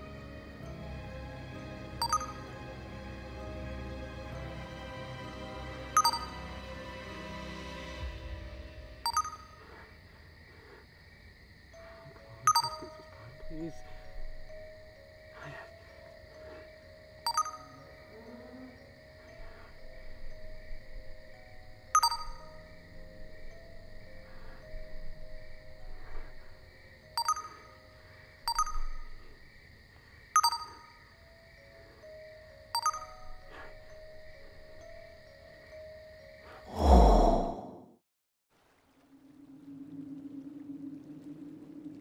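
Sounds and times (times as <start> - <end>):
phone message pings: 12.4 - 13.2, 17.3 - 17.8.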